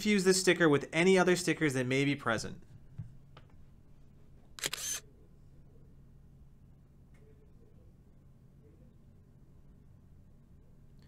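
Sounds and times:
camera shutter click: 4.6s - 5.0s.

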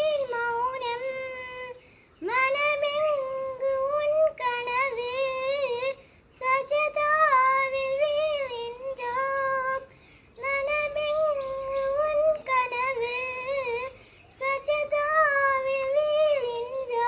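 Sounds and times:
girl singing unaccompanied: 0.0s - 17.0s.

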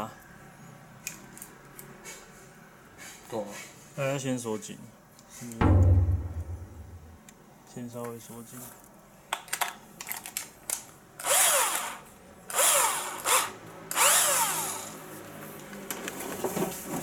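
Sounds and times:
cordless drill whine: 11.2s - 15.0s.

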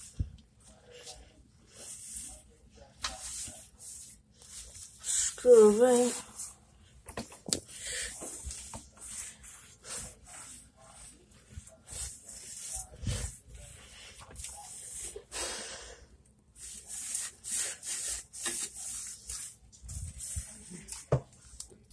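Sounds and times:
brush scrubbing stone countertop: 0.0s - 6.6s, 7.8s - 15.3s, 16.6s - 21.1s.

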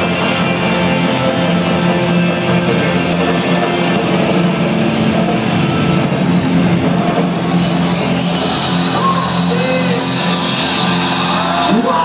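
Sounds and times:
loud live rock music: 0.0s - 12.0s.

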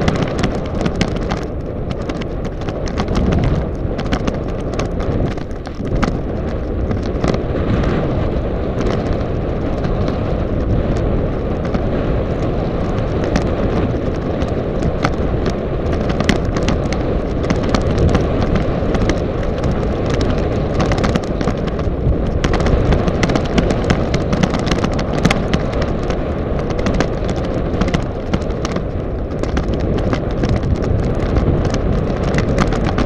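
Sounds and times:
bike and mount clicks and rattles: 0.0s - 33.0s
wind buffeting microphone: 0.0s - 33.0s.

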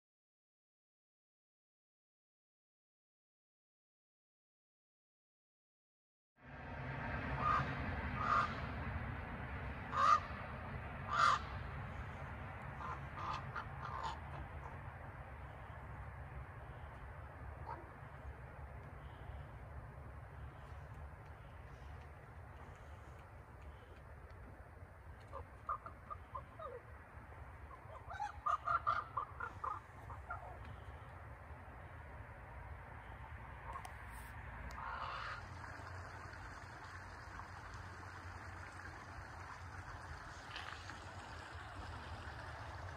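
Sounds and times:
low background rumble: 6.4s - 42.9s
crow cawing: 7.4s - 8.6s, 9.9s - 10.3s, 11.1s - 11.5s, 12.8s - 14.6s, 25.1s - 26.8s, 27.9s - 31.1s, 34.8s - 35.5s
eagle calling: 7.4s - 8.6s, 9.9s - 10.3s, 11.1s - 11.5s, 12.8s - 14.8s, 25.1s - 26.9s, 27.6s - 31.2s.

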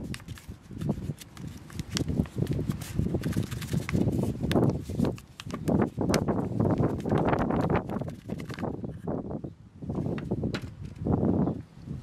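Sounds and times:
plastic pot crackling: 0.0s - 8.8s.

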